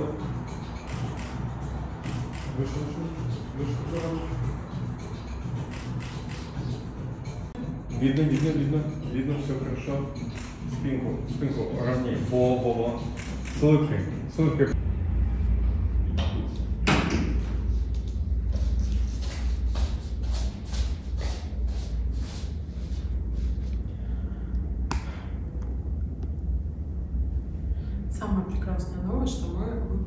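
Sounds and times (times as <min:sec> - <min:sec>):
low rumble: 0:14.1 - 0:19.1, 0:21.3 - 0:30.0.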